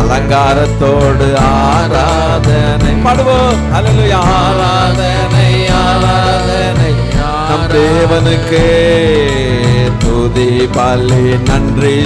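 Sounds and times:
instrumental accompaniment: 0.0 - 12.0
man singing into a microphone: 0.0 - 12.0.

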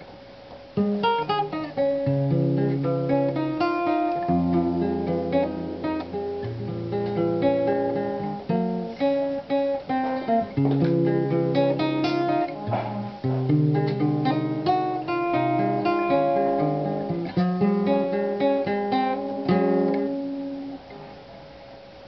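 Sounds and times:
acoustic guitar playing: 0.0 - 22.0.

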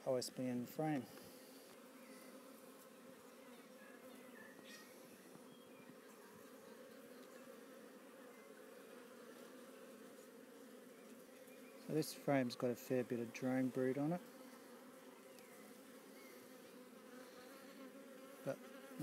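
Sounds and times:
bees buzzing: 0.1 - 19.0.

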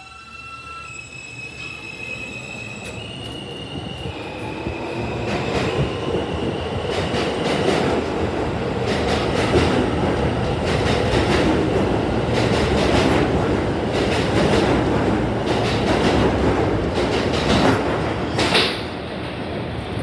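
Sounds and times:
train rumble: 2.8 - 20.0.

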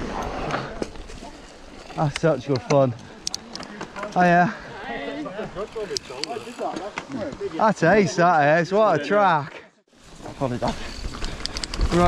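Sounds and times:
people talking: 2.0 - 3.0
bike freehub ticking: 5.6 - 6.8.

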